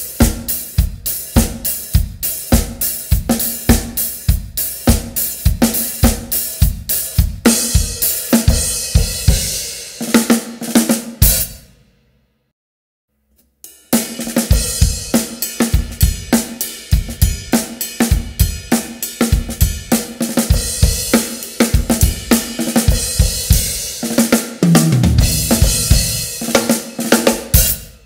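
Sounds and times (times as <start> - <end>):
acoustic drum kit funk groove: 0.0 - 11.6, 13.7 - 28.0.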